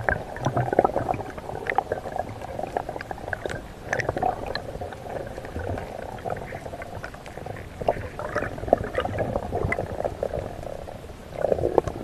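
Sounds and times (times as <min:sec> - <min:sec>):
water bubbling underwater: 0:00.0 - 0:12.0
crackle of short clicks: 0:03.0 - 0:04.7.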